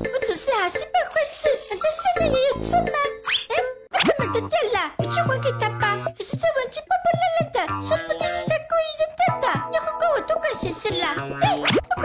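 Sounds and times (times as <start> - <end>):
cartoon character speaking: 0.0 - 12.0
light children's music: 0.0 - 12.0.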